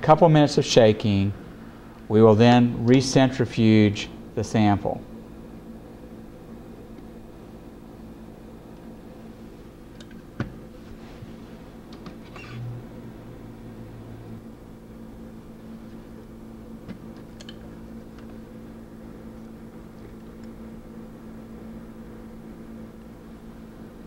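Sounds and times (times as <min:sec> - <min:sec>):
low electrical hum: 0:00.0 - 0:24.0.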